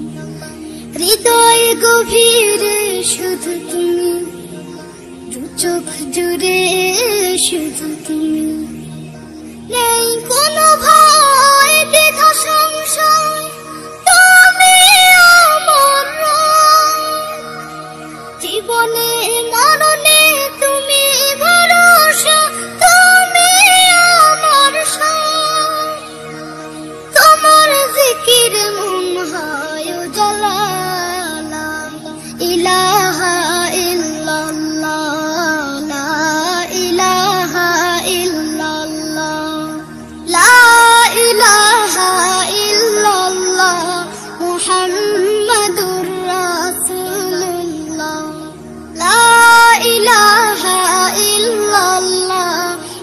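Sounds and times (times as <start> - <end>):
person singing devotional song: 0.0 - 53.0
sustained background tones: 0.0 - 53.0.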